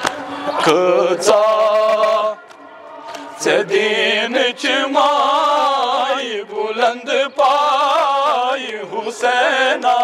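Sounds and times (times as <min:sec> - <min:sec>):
men chanting a lament: 0:00.0 - 0:10.0
man reciting into a microphone: 0:00.4 - 0:10.0.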